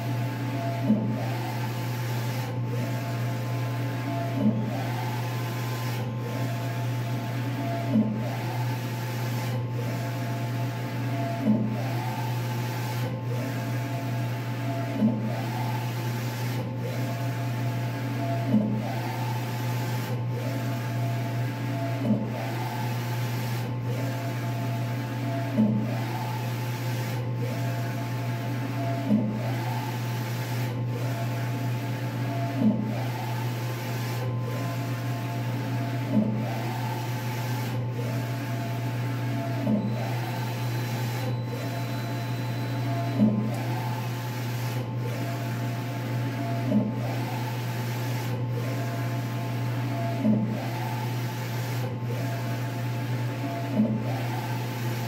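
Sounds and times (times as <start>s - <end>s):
printer carriage motor whining: 0.0s - 55.0s.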